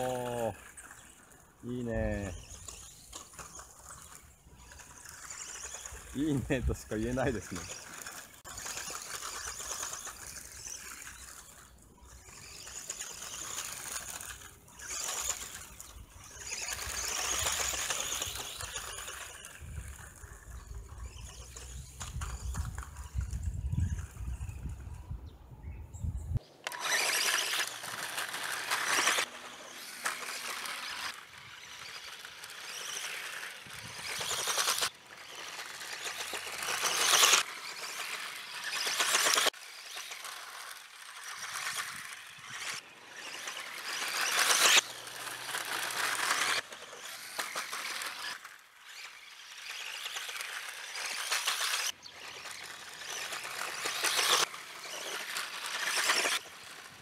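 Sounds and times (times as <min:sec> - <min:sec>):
tyres scrabbling on dirt: 0:00.0 - 0:24.5, 0:26.6 - 0:57.0
electric motor whining: 0:00.0 - 0:24.8, 0:26.6 - 0:57.0.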